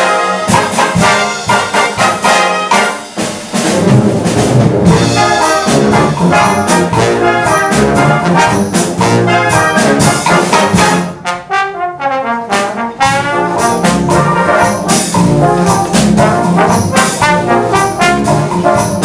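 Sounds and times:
brass band playing: 0:00.0 - 0:19.0.

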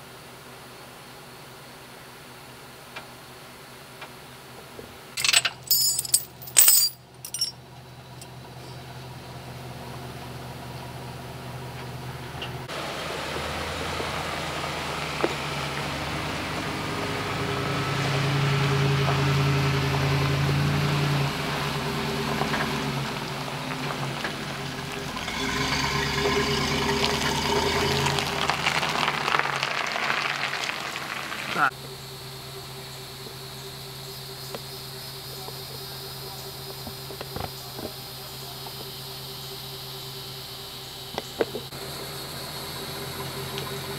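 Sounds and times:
truck engine running: 0:00.0 - 0:43.9.

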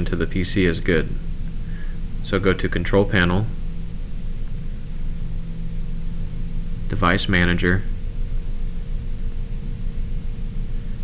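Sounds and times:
faint steady hum: 0:00.0 - 0:11.0
steady low rumble: 0:00.0 - 0:11.0.

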